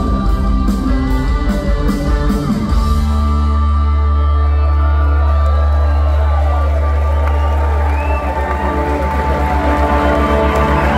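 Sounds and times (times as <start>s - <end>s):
rock band holding droning chord: 0.0s - 10.9s
crowd cheering: 3.5s - 10.9s.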